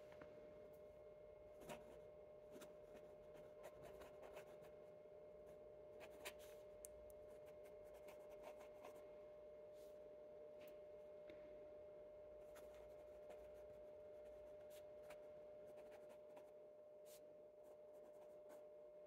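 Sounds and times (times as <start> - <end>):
faint steady hum: 0.0 - 19.0
fountain pen scratching on paper: 1.6 - 4.8, 6.0 - 6.6, 7.4 - 9.0, 12.5 - 16.6, 17.8 - 18.6.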